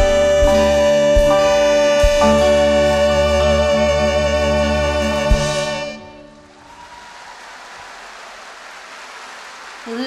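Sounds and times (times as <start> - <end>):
audience applauding: 6.3 - 10.0.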